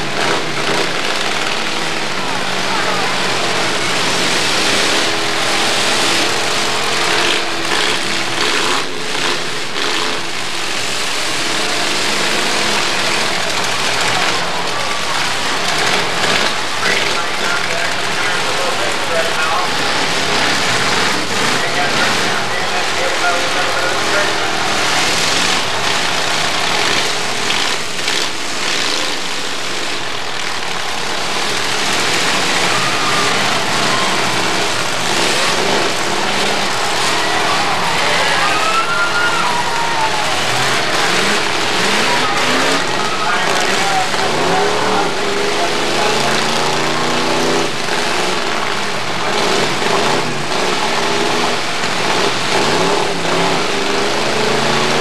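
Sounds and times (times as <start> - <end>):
car engines revving: 0.0 - 55.0
crowd voices: 0.0 - 55.0.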